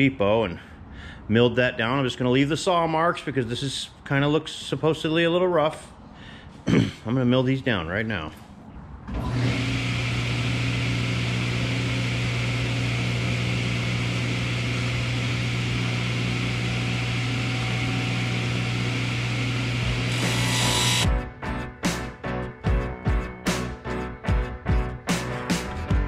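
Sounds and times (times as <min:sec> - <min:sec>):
table saw running: 0:09.2 - 0:21.1
music: 0:20.1 - 0:26.0.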